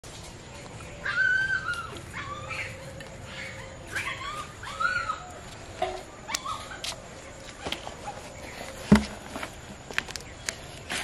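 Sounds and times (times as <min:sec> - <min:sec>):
small dog whimpering and yelping: 0:01.1 - 0:05.3.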